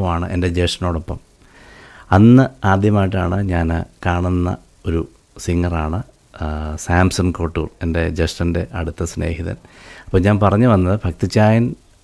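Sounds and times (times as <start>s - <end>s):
man speaking: 0.0s - 1.3s, 2.1s - 11.8s.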